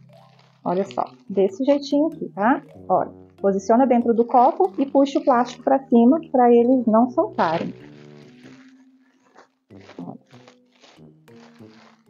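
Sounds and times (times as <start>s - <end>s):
cellophane crinkling: 0.0s - 1.4s, 7.3s - 12.0s
faint background music: 0.0s - 12.0s.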